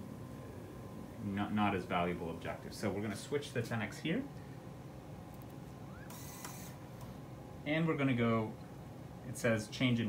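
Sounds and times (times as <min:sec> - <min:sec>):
microscope turret whine: 0:00.0 - 0:09.5
high hissing mechanical whir: 0:05.8 - 0:06.9.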